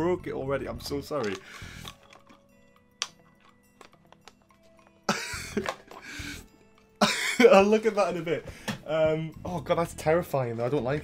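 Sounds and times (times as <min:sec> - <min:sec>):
plastic clicks: 0:01.2 - 0:05.0.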